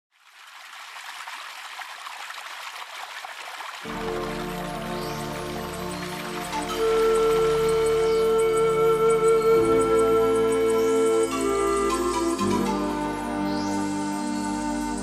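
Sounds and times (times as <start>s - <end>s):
stream splashing over rocks: 0.1s - 8.0s
slow instrumental music: 3.9s - 15.0s.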